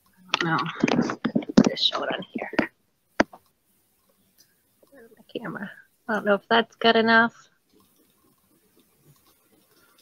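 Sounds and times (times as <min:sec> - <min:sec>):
person talking indistinctly: 0:00.3 - 0:03.4.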